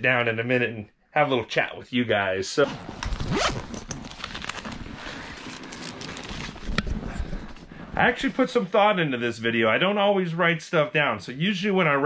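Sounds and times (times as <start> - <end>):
rustling: 2.8 - 8.6.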